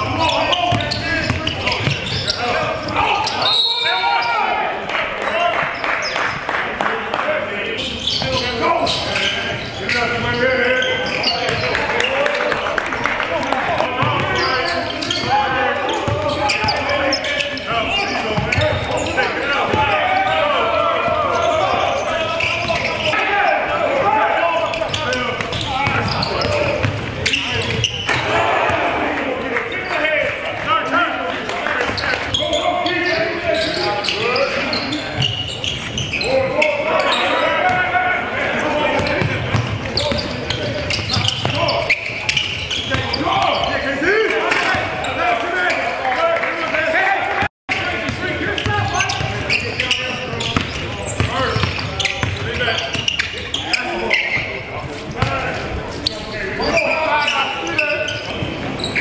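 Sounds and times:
echoing overlapping voices: 0:00.0 - 0:59.0.

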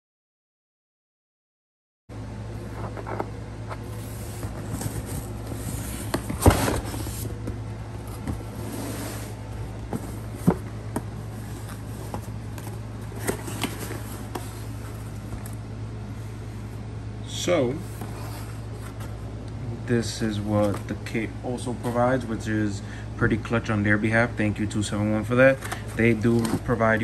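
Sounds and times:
steady low hum: 0:02.1 - 0:27.0
cardboard box being opened: 0:02.6 - 0:15.6.

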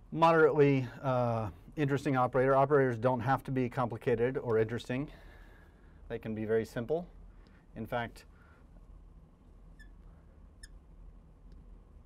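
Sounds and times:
low room hum: 0:00.0 - 0:12.0
marker squeaking on glass: 0:09.7 - 0:10.8.

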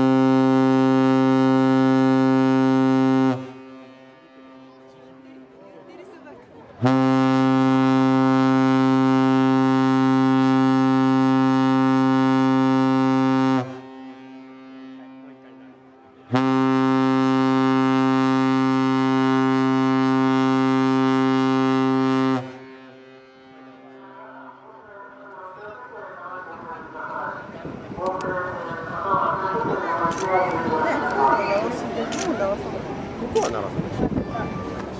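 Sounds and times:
ship's whistle blasts: 0:00.0 - 0:04.9, 0:06.8 - 0:24.1.

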